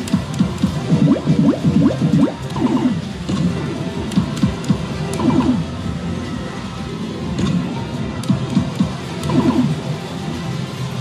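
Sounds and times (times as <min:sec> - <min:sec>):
electronic machine sound effects: 0:00.0 - 0:03.5, 0:04.1 - 0:05.8, 0:08.2 - 0:09.9
background music: 0:00.0 - 0:11.0.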